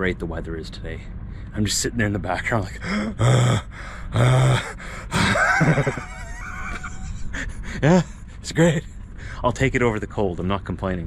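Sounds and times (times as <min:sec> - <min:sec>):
man speaking: 0:00.0 - 0:03.5, 0:07.8 - 0:11.0
man laughing: 0:02.8 - 0:08.9.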